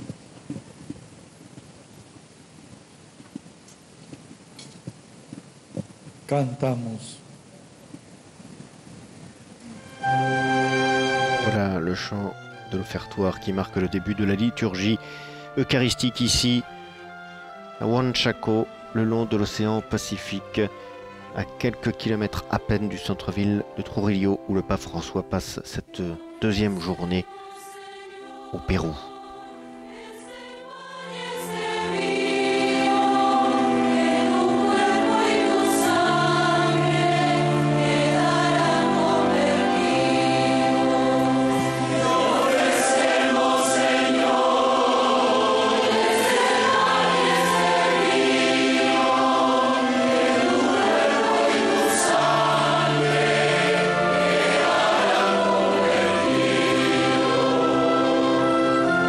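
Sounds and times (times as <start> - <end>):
choir singing a hymn: 9.8 - 59.0
string orchestra: 9.8 - 59.0.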